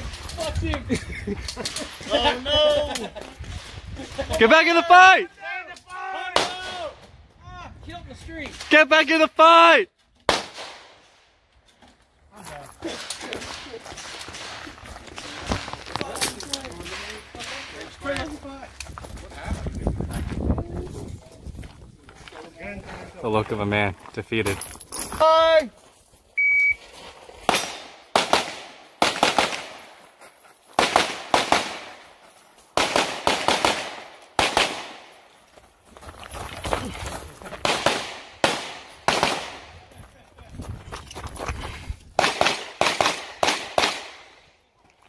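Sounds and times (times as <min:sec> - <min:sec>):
pistol shots echoing: 0:27.5 - 0:29.9, 0:30.8 - 0:32.0, 0:32.8 - 0:35.2, 0:37.6 - 0:39.7, 0:42.2 - 0:44.4.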